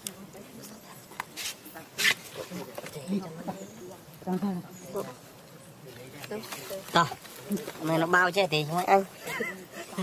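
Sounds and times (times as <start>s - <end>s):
people speaking quietly: 0.0s - 10.0s.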